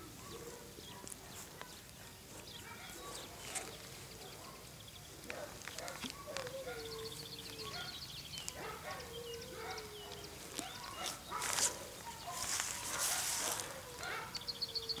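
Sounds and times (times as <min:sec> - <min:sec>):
rustling: 0:00.1 - 0:07.8, 0:09.8 - 0:14.3.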